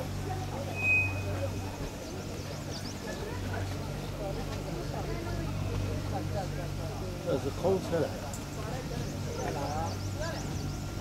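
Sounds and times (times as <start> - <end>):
cable car mechanical hum: 0.0 - 11.0
faint voices talking: 0.0 - 11.0.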